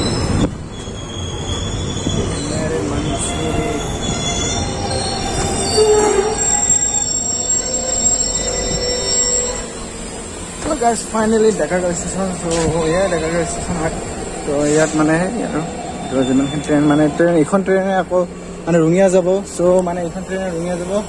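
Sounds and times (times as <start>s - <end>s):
train brakes squealing: 0.0s - 17.8s, 19.6s - 21.0s
train running gear rumble: 0.0s - 21.0s.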